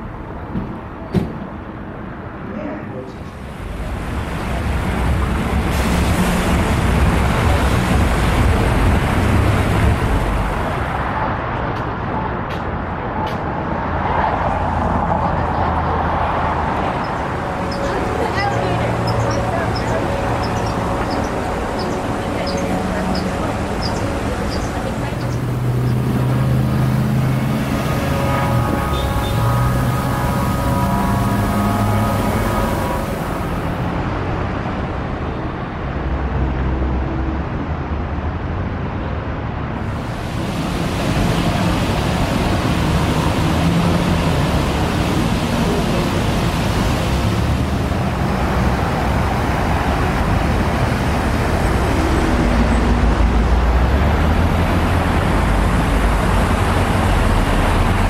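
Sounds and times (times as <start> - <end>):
cars and trucks passing: 0.0 - 58.0.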